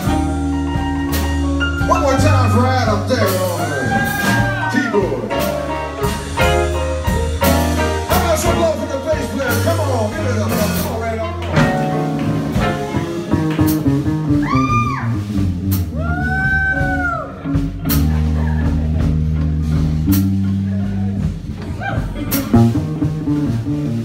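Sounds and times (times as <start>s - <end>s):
live blues band playing: 0.0s - 24.0s.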